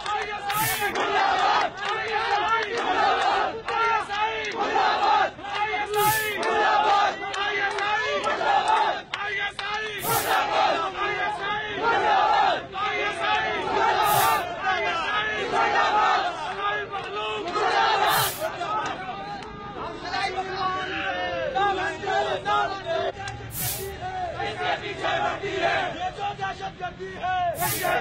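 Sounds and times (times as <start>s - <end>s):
crowd of men chanting: 0.0s - 28.0s
short hiss: 0.5s - 0.9s, 6.0s - 6.4s, 10.0s - 10.4s, 14.0s - 14.4s, 18.1s - 18.5s, 23.5s - 24.0s, 27.6s - 28.0s.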